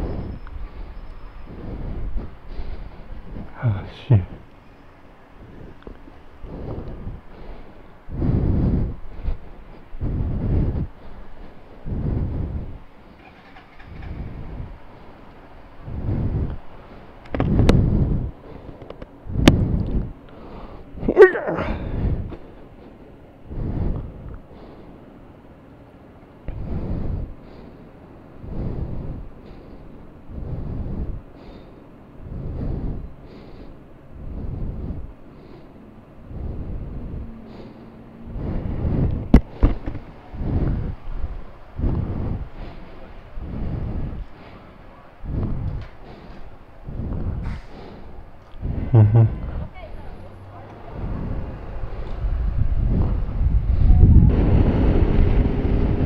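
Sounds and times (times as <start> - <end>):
breathing into a microphone: 0.0 - 4.5, 5.4 - 21.0, 21.6 - 25.0, 26.5 - 56.0.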